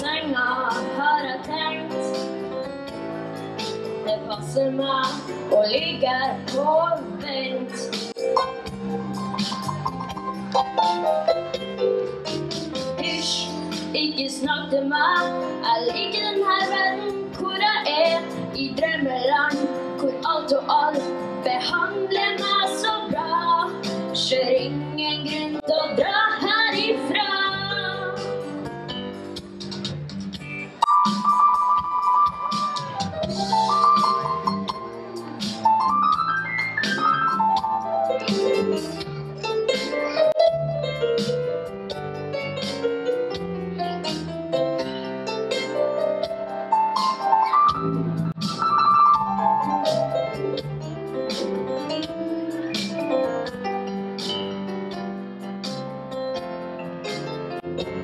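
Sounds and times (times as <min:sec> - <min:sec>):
instrumental backing music: 0:00.0 - 0:58.0
live band with piano: 0:00.0 - 0:58.0.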